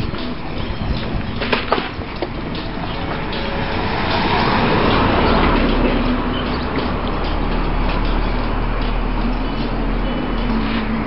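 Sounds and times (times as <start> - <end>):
van engine rumbling: 0.0 - 11.0.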